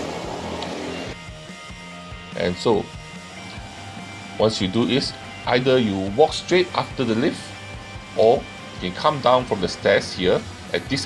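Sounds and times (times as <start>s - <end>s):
road traffic noise: 0.0s - 1.2s
background music: 0.0s - 11.0s.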